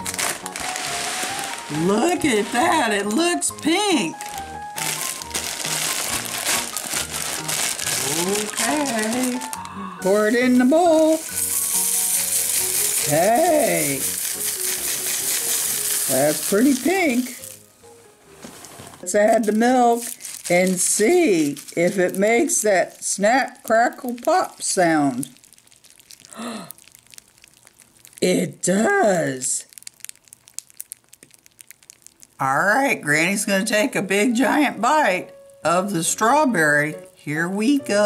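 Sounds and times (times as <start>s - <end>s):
cereal pouring into a bowl: 0.0s - 17.7s, 19.1s - 28.4s, 29.4s - 32.4s.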